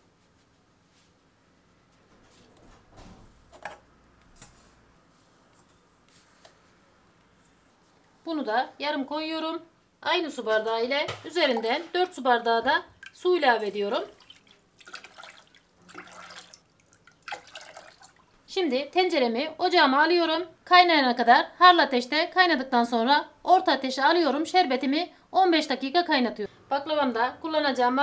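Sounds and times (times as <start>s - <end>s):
water pouring into metal pot: 13.0s - 18.3s.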